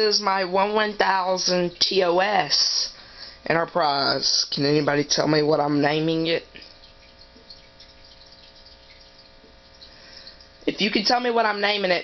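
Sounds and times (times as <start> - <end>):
faint multi-tone hum: 0.0 - 12.0.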